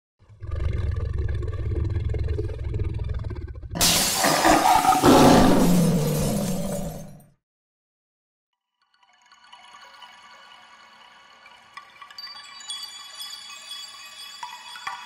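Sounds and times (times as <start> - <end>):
lion roaring: 0.3 - 7.2
glass shattering crash: 3.8 - 7.2.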